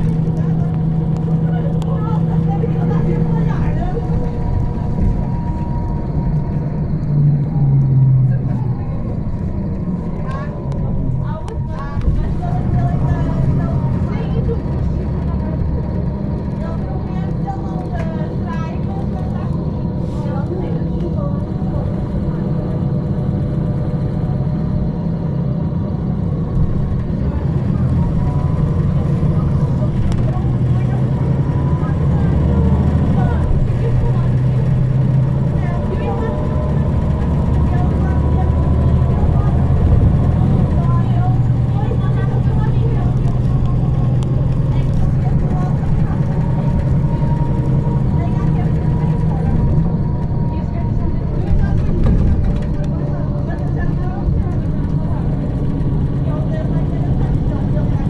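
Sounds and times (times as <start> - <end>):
bus engine drone: 0.0 - 58.0.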